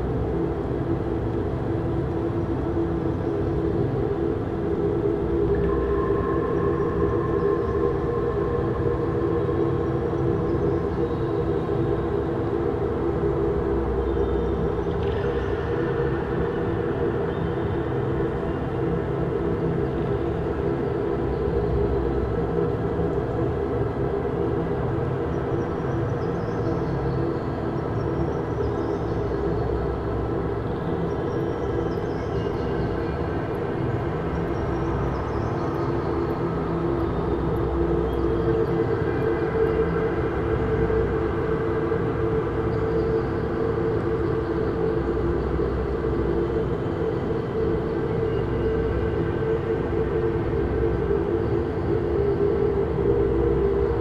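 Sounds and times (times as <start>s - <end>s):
low ambient drone: 0.0s - 54.0s.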